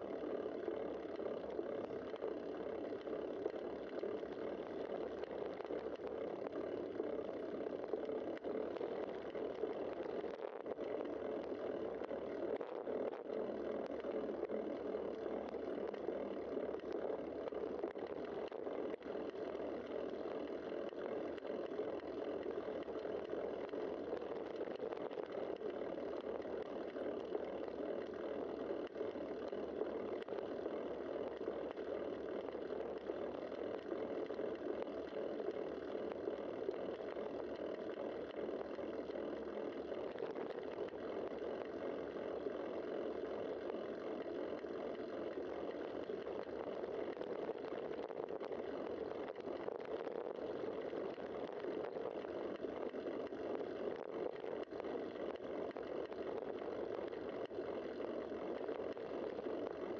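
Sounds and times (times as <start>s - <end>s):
bicycle tyres rolling on pavement: 6.6s - 7.5s.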